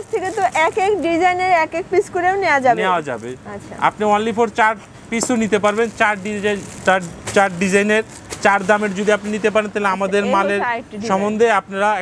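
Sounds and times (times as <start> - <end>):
person talking: 5.1 - 11.4.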